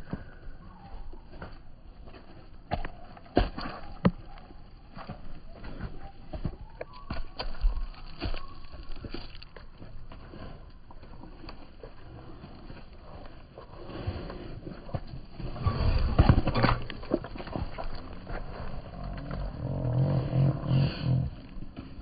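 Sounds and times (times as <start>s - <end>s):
sheep hooves on ground: 0.0s - 22.0s.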